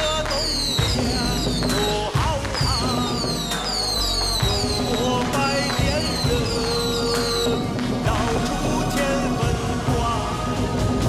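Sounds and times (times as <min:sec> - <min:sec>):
heavy percussion hits: 0:00.8 - 0:11.0.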